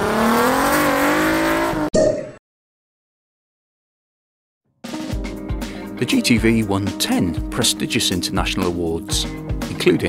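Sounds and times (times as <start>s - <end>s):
car engine accelerating: 0.0s - 1.9s.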